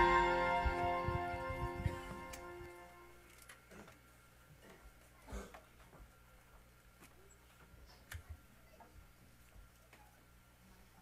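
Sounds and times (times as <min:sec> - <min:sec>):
band holding a chord: 0:00.0 - 0:03.2.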